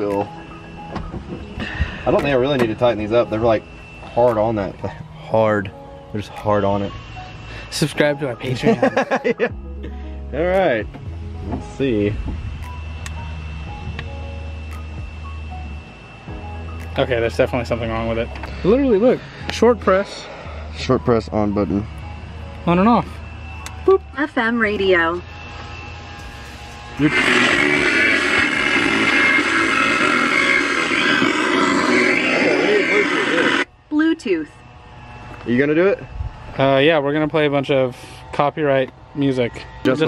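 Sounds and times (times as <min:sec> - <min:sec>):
faint high whine: 0:00.0 - 0:09.6, 0:10.4 - 0:40.0
steady low hum: 0:00.0 - 0:40.0.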